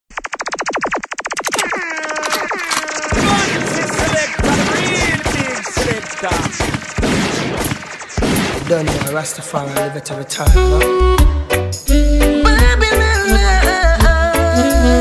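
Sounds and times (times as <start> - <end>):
falling laser zaps: 0.1 - 9.2
rapid rattle of sound effects: 0.1 - 9.4
processed voice drop: 1.6 - 6.8.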